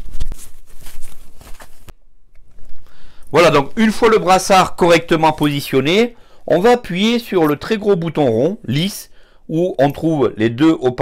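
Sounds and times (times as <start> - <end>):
fabric rustling and rubbing: 0.0 - 2.8.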